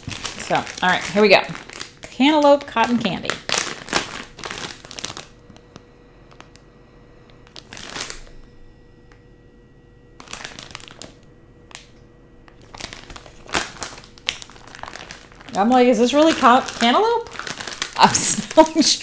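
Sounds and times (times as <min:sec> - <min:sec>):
plastic packaging crinkling: 0:00.0 - 0:06.7, 0:07.3 - 0:08.5, 0:10.2 - 0:19.0.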